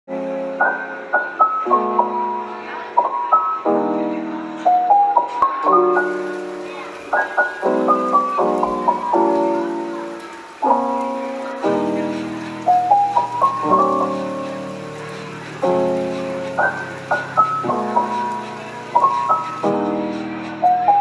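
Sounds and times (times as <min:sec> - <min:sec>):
slow piano music: 0:00.1 - 0:21.0.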